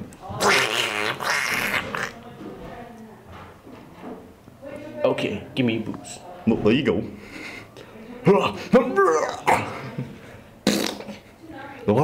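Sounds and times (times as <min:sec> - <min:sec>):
person making mouth sound effect: 0:00.4 - 0:02.2, 0:10.6 - 0:11.2.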